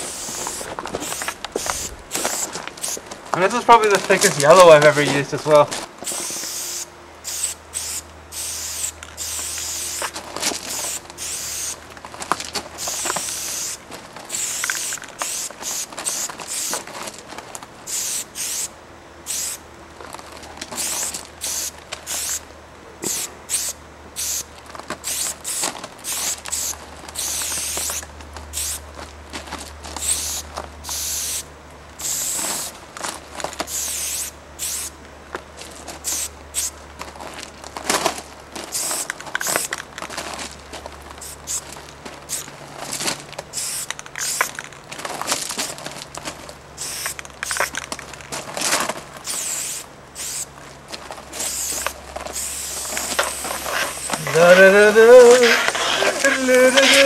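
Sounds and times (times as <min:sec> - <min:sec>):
spray paint can hissing: 0:00.0 - 0:03.0, 0:06.0 - 0:11.8, 0:12.8 - 0:16.9, 0:17.9 - 0:19.6, 0:20.7 - 0:22.4, 0:23.0 - 0:28.8, 0:30.0 - 0:32.8, 0:33.7 - 0:35.0, 0:36.0 - 0:36.8, 0:38.7 - 0:39.8, 0:41.2 - 0:41.7, 0:42.3 - 0:42.5, 0:43.5 - 0:44.7, 0:46.8 - 0:47.9, 0:49.2 - 0:50.5, 0:51.3 - 0:57.0.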